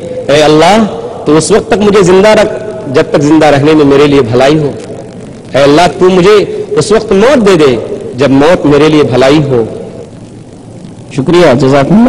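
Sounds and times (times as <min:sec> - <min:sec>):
man speaking: 0:00.0 - 0:04.8, 0:05.5 - 0:09.8, 0:11.1 - 0:12.0
faint room noise: 0:00.0 - 0:12.0.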